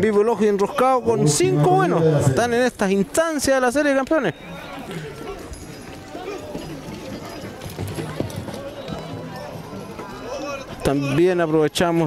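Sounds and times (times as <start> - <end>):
crowd voices: 0.0 - 12.0
horses galloping on dirt: 0.0 - 12.0.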